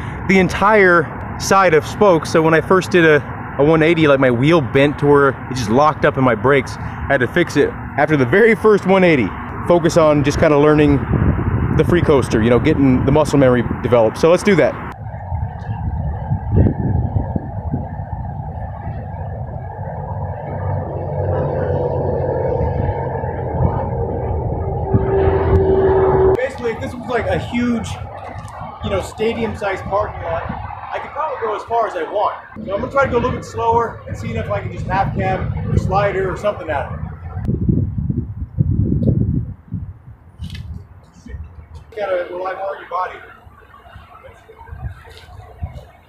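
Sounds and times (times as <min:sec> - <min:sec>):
wind blowing on microphone: 0:00.0 - 0:46.0
steady hum: 0:14.8 - 0:38.8.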